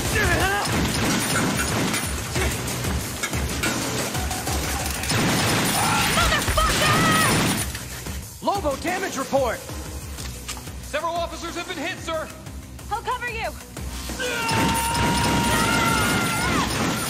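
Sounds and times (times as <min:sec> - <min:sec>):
dramatic music score: 0:00.0 - 0:17.0
automatic gunfire: 0:05.1 - 0:07.6.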